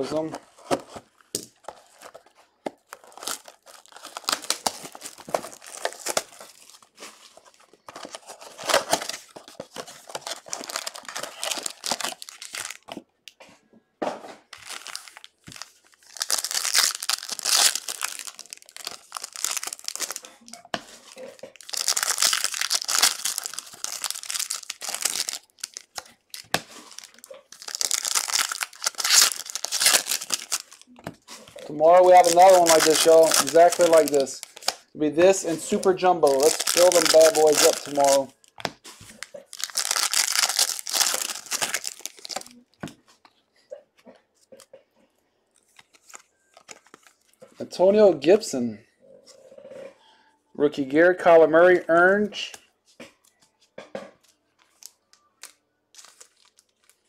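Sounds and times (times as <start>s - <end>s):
foil packs crinkling and tearing: 2.8s - 13.0s, 14.5s - 34.9s, 35.6s - 42.6s, 45.7s - 47.4s, 54.7s - 57.0s.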